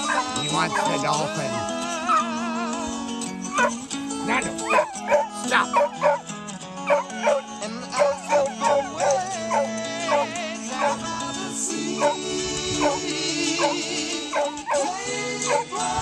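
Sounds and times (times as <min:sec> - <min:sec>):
dog yipping and whining: 0:00.0 - 0:01.0, 0:03.5 - 0:03.8, 0:04.4 - 0:06.3, 0:06.9 - 0:11.0, 0:12.0 - 0:12.2, 0:12.8 - 0:13.0, 0:13.6 - 0:15.8
background music: 0:00.0 - 0:16.0.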